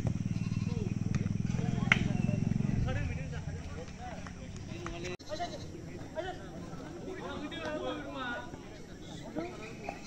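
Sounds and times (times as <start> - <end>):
people talking and calling: 0.0 - 10.0
goat bleating: 0.3 - 0.9.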